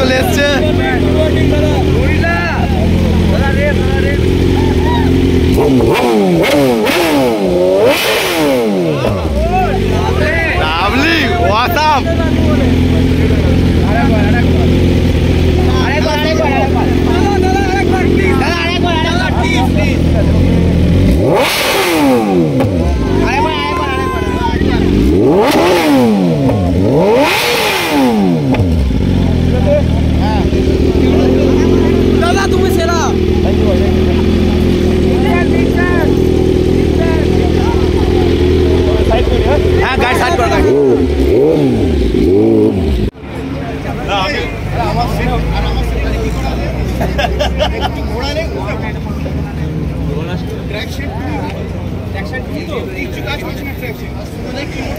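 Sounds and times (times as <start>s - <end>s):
motorcycle engine idling and revving: 0.0s - 54.9s.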